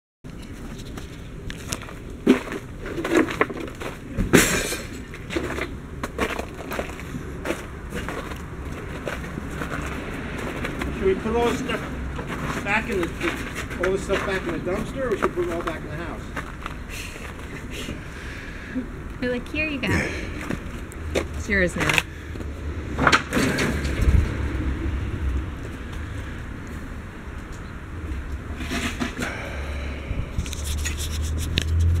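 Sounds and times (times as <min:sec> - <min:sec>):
low outdoor rumble: 0:00.3 - 0:32.0.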